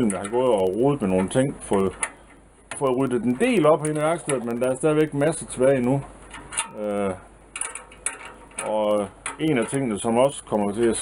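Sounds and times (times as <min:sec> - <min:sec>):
metal parts clicking and rattling: 0:06.2 - 0:06.8, 0:07.5 - 0:10.2.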